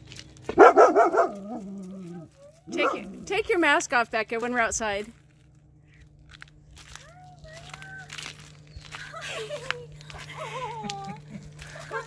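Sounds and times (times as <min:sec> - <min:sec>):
air conditioner humming: 0:00.0 - 0:12.0
footsteps crunching on gravel: 0:00.0 - 0:12.0.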